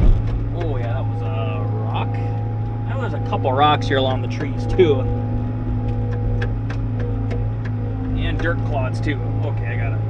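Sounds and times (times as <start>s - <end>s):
diesel engine droning: 0.0s - 10.0s.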